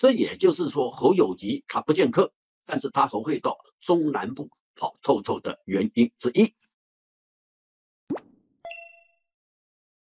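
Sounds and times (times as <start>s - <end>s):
quick rising pop: 8.1s - 8.4s
short bright chime: 8.6s - 9.3s.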